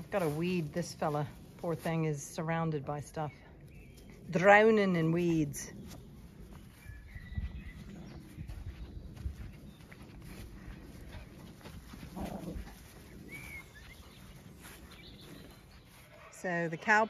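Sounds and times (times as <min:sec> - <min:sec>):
footsteps on grass: 0:00.0 - 0:17.0.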